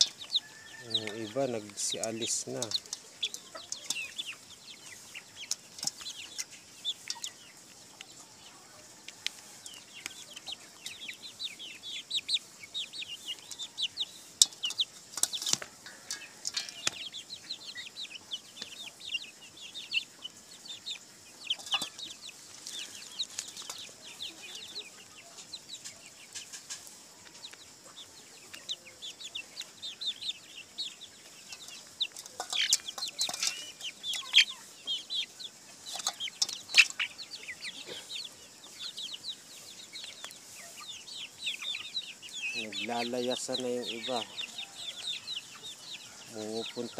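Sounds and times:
chicks peeping and clucking: 0.0 - 46.9.

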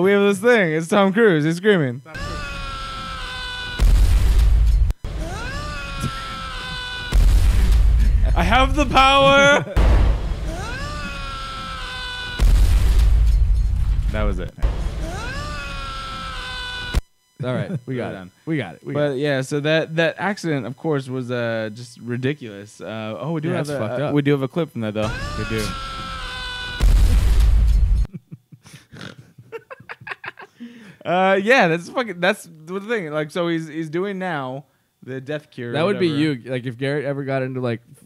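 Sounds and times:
man screaming: 2.1 - 3.8, 5.2 - 7.2, 10.4 - 12.4, 15.1 - 17.0, 25.0 - 26.8
low booming rumble: 7.2 - 9.2, 9.8 - 10.7, 12.4 - 15.2.

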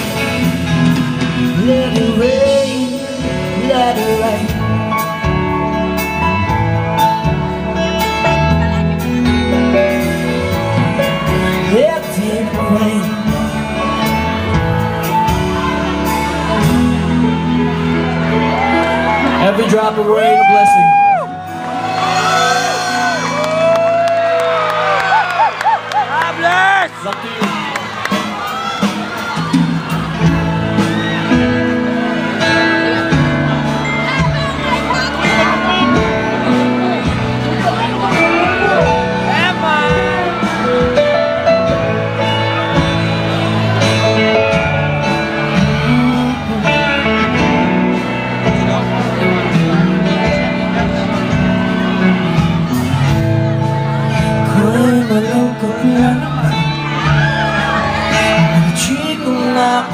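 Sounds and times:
electric guitar: 0.0 - 59.9
live rock band: 0.0 - 59.9
man singing into a microphone: 1.3 - 5.2, 11.5 - 14.5, 45.5 - 47.6, 54.1 - 59.9
crowd cheering and whooping: 14.6 - 47.5, 55.9 - 59.9.

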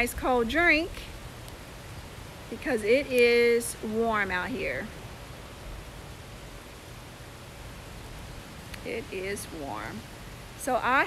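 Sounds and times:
low uneven rumble: 0.0 - 11.0
outdoor background hiss: 0.0 - 11.0.

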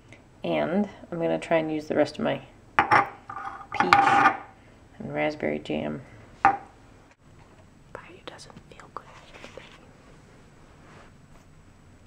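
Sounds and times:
soft whispering: 7.9 - 9.9.

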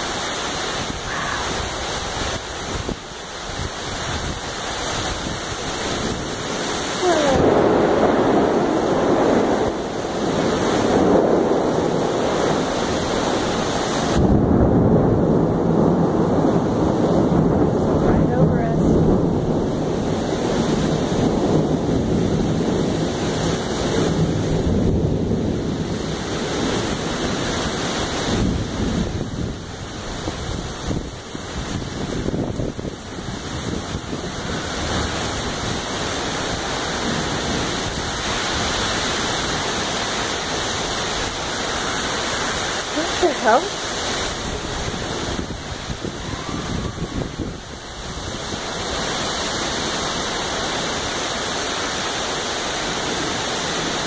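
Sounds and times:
gusting wind: 0.0 - 54.0
heavy rain: 0.0 - 54.0
wind buffeting microphone: 0.0 - 54.0.

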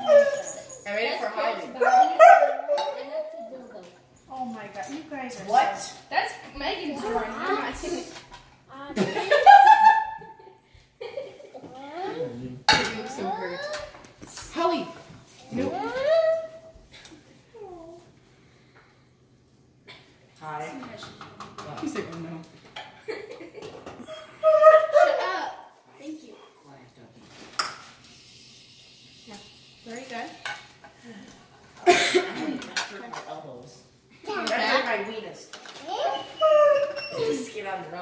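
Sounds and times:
child's voice: 11.6 - 12.4, 13.0 - 14.0, 15.4 - 16.6, 35.8 - 36.5
ceramic dishes clattering: 12.7 - 13.1.

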